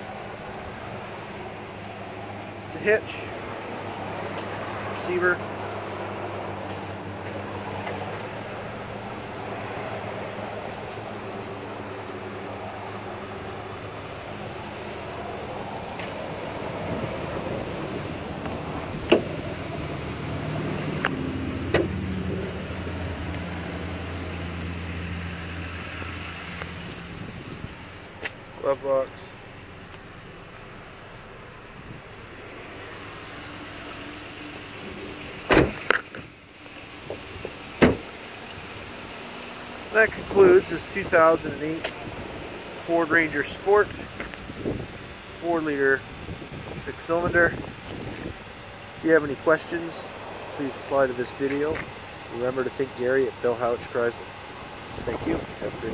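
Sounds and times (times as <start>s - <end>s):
truck engine idling: 0.0s - 55.9s
car door latch clicking: 35.5s - 36.2s.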